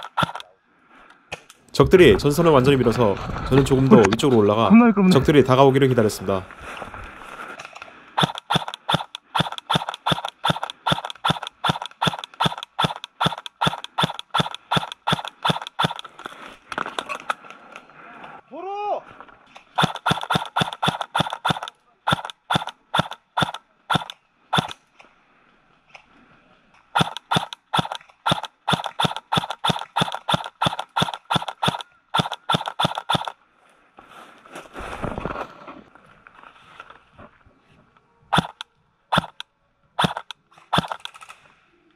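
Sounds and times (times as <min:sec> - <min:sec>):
airsoft gun firing single shots: 0:00.0 - 0:00.5, 0:08.2 - 0:16.0, 0:19.8 - 0:24.8, 0:27.0 - 0:33.3, 0:38.4 - 0:39.4, 0:40.0 - 0:41.3.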